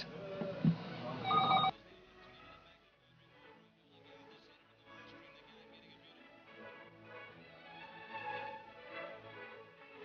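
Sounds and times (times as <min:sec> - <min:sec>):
electronic ringing tone: 0:01.2 - 0:01.7.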